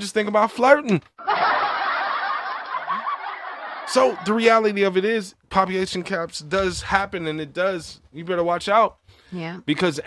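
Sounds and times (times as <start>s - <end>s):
audience laughter: 1.2s - 4.6s.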